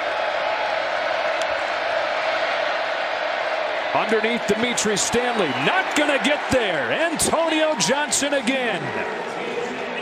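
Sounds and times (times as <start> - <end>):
large stadium crowd noise: 0.0 - 10.0.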